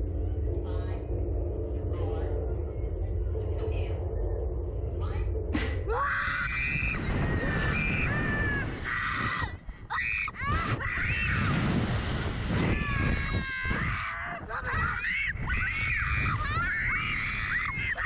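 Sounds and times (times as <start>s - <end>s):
wind rushing on microphone: 0.0s - 18.0s
girls screaming: 5.9s - 11.6s, 12.7s - 18.0s.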